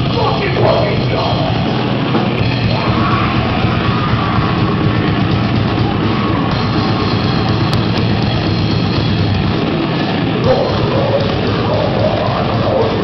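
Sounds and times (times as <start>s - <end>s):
death metal band playing live: 0.0s - 13.0s.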